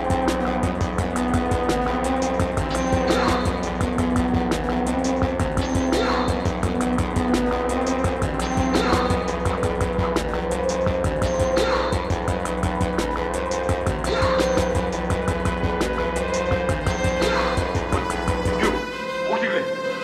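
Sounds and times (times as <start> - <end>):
synthesizer drone tones: 0.0 - 20.0.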